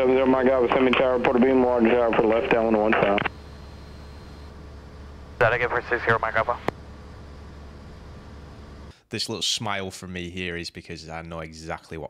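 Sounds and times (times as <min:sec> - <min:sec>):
radio call voice: 0:00.0 - 0:03.3, 0:05.4 - 0:06.7
airplane engine drone: 0:00.0 - 0:09.0.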